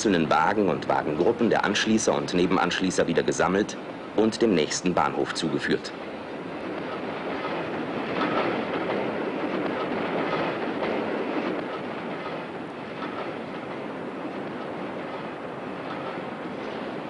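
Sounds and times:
freight wagons rolling on rails: 0.0 - 17.0
wheels clattering on rails: 0.0 - 17.0.

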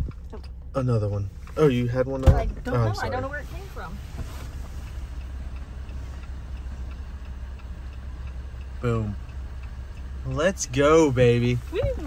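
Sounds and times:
diesel engine idling: 0.0 - 12.0
faint regular ticking: 0.0 - 12.0.

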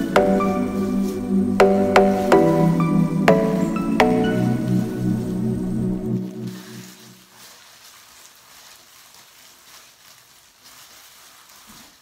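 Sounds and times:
background music: 0.0 - 7.2
plastic cape rustling: 6.1 - 12.0.

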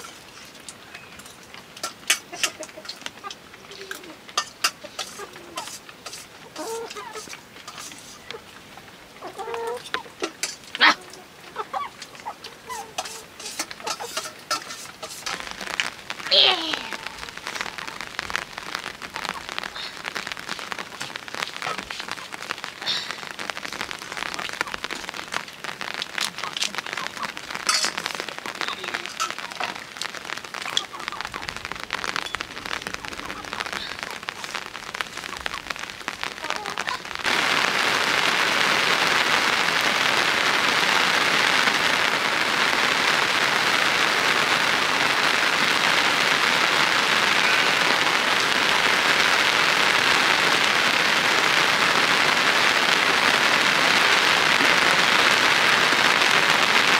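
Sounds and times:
raindrops dripping on surfaces: 0.0 - 56.9
steady rush of rain: 0.0 - 56.9.

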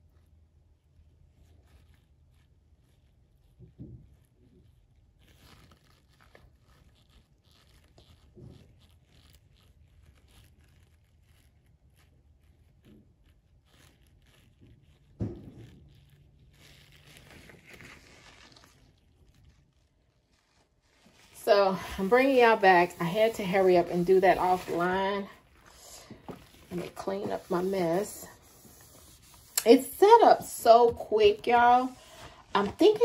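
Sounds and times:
spatula scraping soap batter: 21.1 - 33.0.

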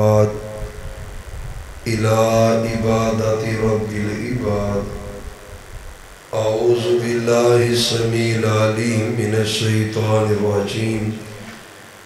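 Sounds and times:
man chanting melodically: 0.0 - 5.7, 6.3 - 11.7.

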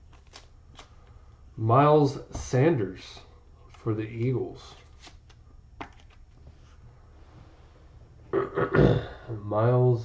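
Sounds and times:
man clearing throat: 8.3 - 9.4.

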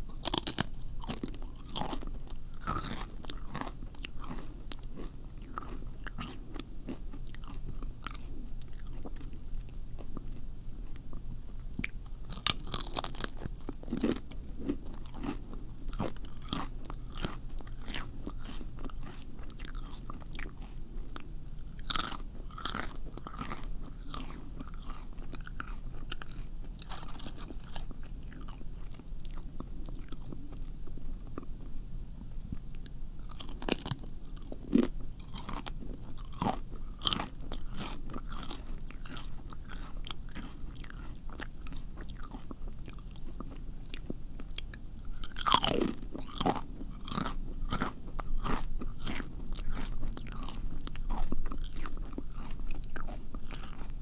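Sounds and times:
crunchy food chewing: 0.0 - 31.8, 32.5 - 54.0
faint low hum: 0.0 - 54.0.

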